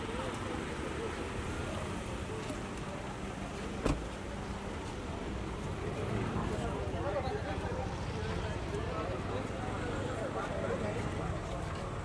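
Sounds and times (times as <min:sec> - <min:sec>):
car door thud: 0:03.8 - 0:04.1.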